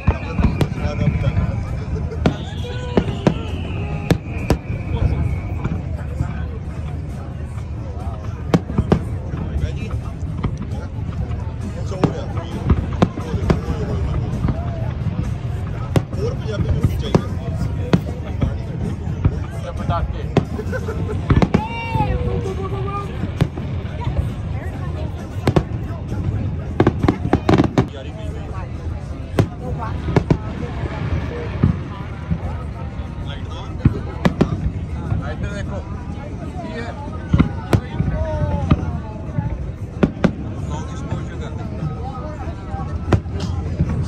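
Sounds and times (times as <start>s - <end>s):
fireworks bursting: 0.0s - 44.0s
low rumble: 17.4s - 44.0s.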